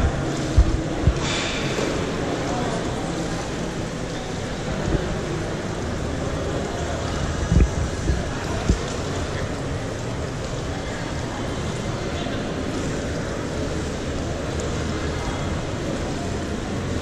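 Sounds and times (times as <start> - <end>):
short low thumps: 0.0 - 1.6
faint distant voices: 0.0 - 17.0
reverberant water noise: 0.0 - 17.0.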